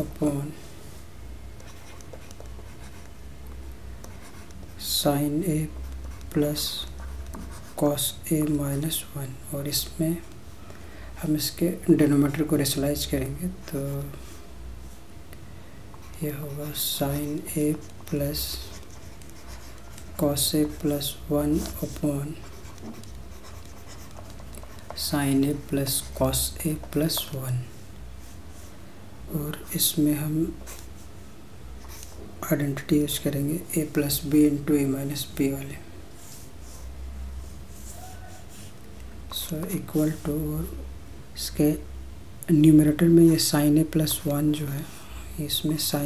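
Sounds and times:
steady low hum: 0.0 - 46.0
stylus scratching on tablet: 1.6 - 3.2, 4.1 - 8.6, 16.0 - 27.3, 36.2 - 38.8.

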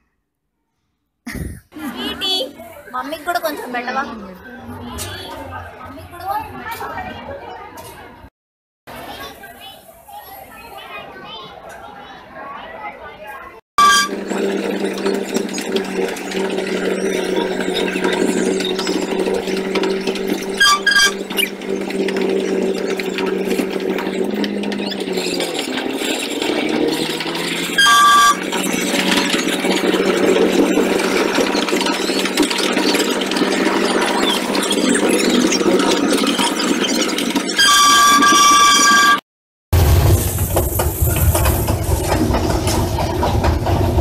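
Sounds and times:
busy background din: 1.7 - 8.3, 8.9 - 39.2
crowd chatter with children's voices: 1.8 - 8.3, 8.9 - 36.9
short loud beep: 13.8 - 14.2
engine-like hum: 13.8 - 38.5.

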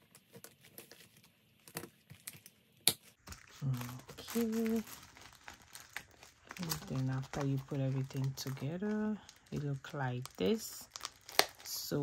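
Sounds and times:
plastic sleeves rustling: 0.0 - 12.0.

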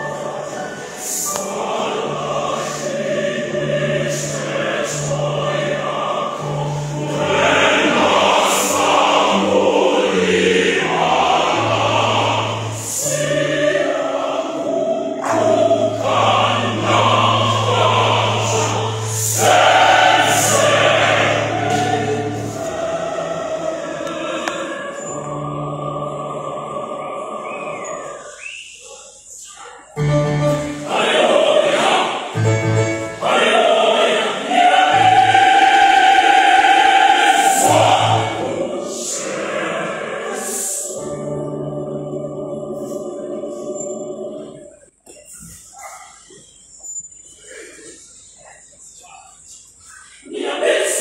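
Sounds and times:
mixed choir singing: 0.0 - 45.6, 50.1 - 51.0.

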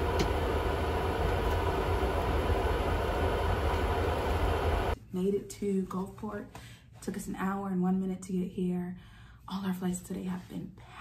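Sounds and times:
jet engine and airflow rumble: 0.0 - 5.0
faint steady hum: 0.0 - 5.7.

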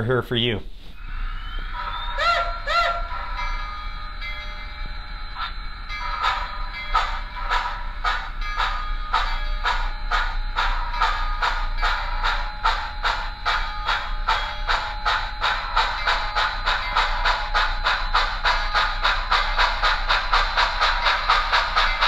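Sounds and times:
steam exhaust chuffs: 1.0 - 22.0
model train whistle toots: 1.3 - 3.7.

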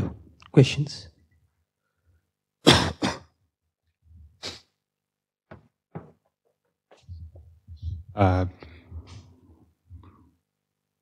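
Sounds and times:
person coughing: 2.6 - 3.4.

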